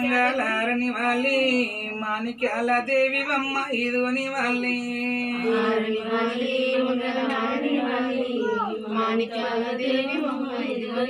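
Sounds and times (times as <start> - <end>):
voices singing devotional song: 0.0 - 11.0.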